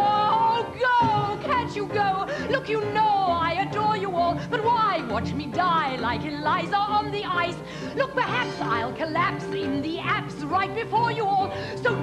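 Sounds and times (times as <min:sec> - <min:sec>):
pit orchestra accompaniment: 0:00.0 - 0:12.0
woman singing: 0:00.0 - 0:12.0.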